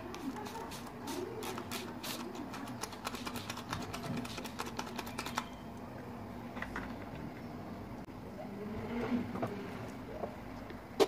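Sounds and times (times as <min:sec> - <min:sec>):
spray bottle spritzing: 0:00.1 - 0:05.5.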